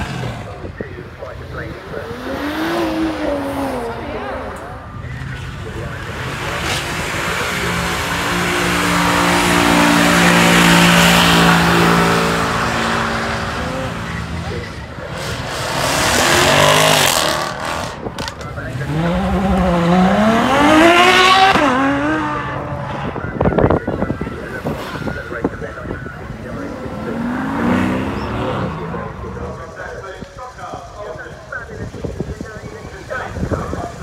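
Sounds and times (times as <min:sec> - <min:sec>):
sports car engine revving: 0:00.0 - 0:30.0
car accelerating past: 0:26.4 - 0:29.6.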